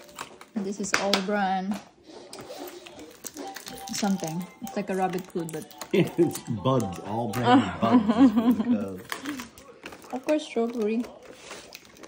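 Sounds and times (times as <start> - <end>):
quiet background talking: 4.1 - 12.0.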